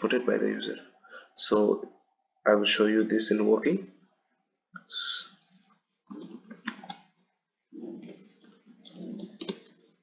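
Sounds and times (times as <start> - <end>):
typing on a computer keyboard: 6.1 - 7.1, 8.0 - 9.9.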